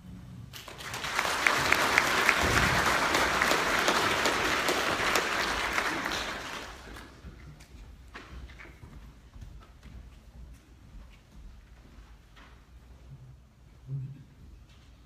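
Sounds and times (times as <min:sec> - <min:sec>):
audience applauding: 0:00.6 - 0:07.3.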